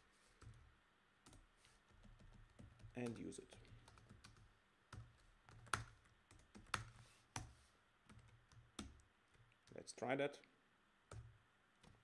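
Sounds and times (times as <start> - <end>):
faint typing on keyboard: 0.4 - 9.9, 11.1 - 12.0.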